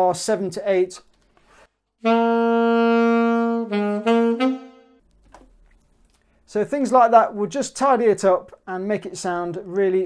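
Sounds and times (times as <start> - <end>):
alto saxophone notes: 2.0 - 5.0.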